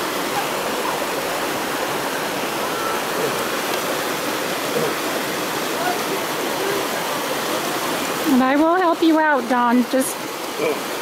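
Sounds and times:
water rushing over rocks: 0:00.0 - 0:11.0.

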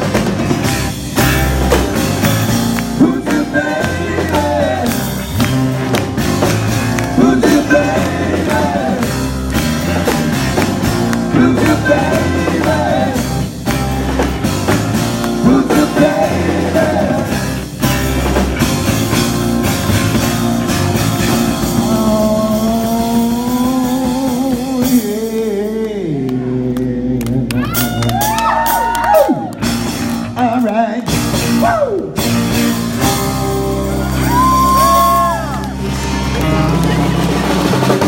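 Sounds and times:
audience clapping along: 0:00.0 - 0:16.4, 0:25.3 - 0:31.2, 0:34.3 - 0:38.0
acoustic guitar: 0:00.0 - 0:28.3
drums: 0:00.0 - 0:38.0
person singing: 0:02.9 - 0:05.5, 0:07.0 - 0:09.4, 0:11.1 - 0:13.5, 0:15.3 - 0:17.5, 0:21.5 - 0:29.4.

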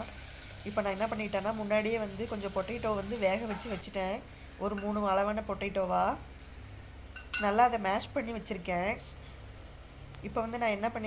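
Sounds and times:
onions sizzling in oil: 0:00.0 - 0:11.0.

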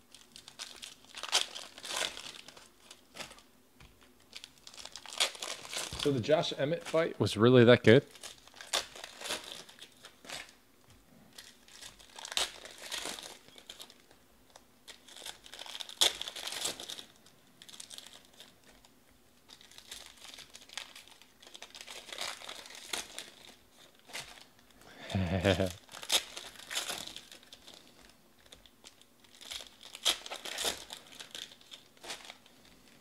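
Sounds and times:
foil wrappers tearing and crinkling: 0:00.0 - 0:07.0, 0:08.1 - 0:10.6, 0:11.3 - 0:33.0.

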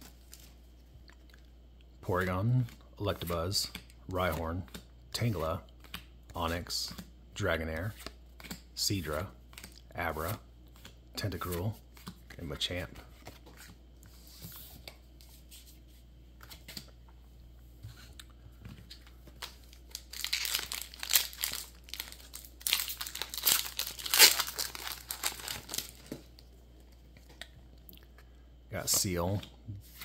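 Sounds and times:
foil wrapper crinkling and tearing: 0:19.4 - 0:26.2.

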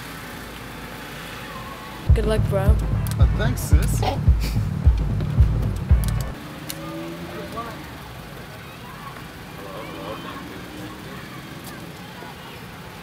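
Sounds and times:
low traffic rumble: 0:00.0 - 0:13.0
faint indistinct voices: 0:06.7 - 0:13.0.

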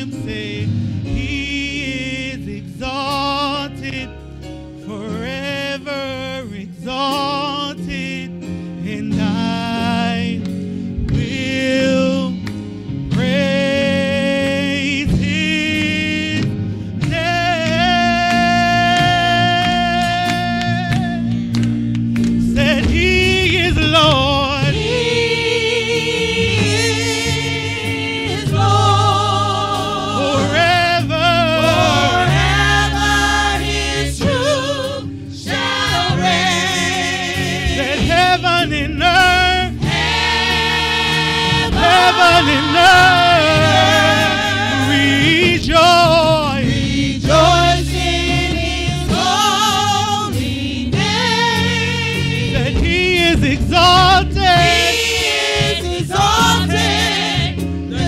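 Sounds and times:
gospel voices singing: 0:00.0 - 0:58.0
low steady accompaniment: 0:00.0 - 0:58.0.

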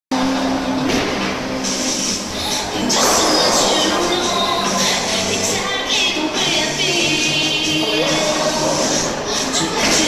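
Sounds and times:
busy bowling alley din: 0:00.1 - 0:10.0.

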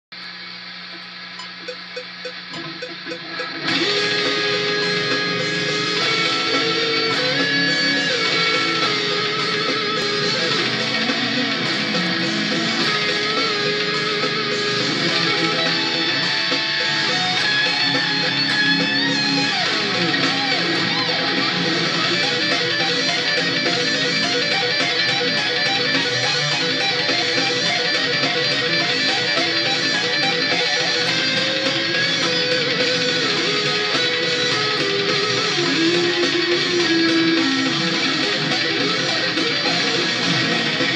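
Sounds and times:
electric guitar solo: 0:02.6 - 0:40.9.

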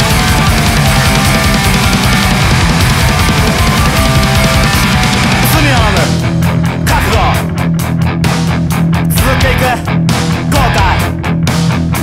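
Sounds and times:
hardcore rock music: 0:00.0 - 0:12.0.

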